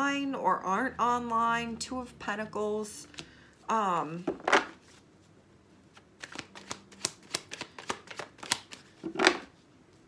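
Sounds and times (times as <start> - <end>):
cards being shuffled: 5.9 - 9.6.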